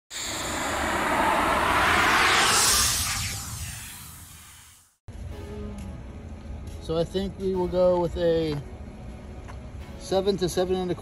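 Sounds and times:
rushing whoosh: 0.1 - 4.8.

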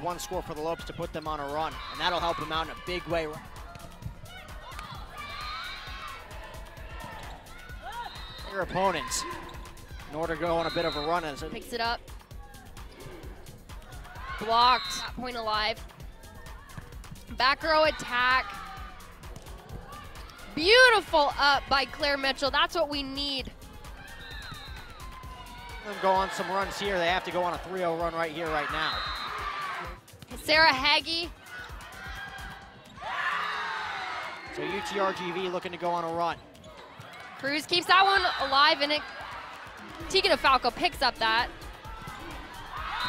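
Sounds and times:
background music with low beat: 0.0 - 38.4, 39.0 - 43.0
women cheering and shouting: 1.7 - 11.4, 13.9 - 15.3, 17.4 - 19.1, 19.8 - 22.4, 23.8 - 27.4, 28.3 - 30.0, 31.2 - 35.7, 37.0 - 43.0.

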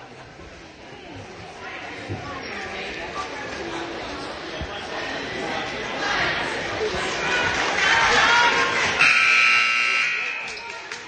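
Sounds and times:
crowd chatter: 0.0 - 11.0
scoreboard buzzer: 9.0 - 10.5.

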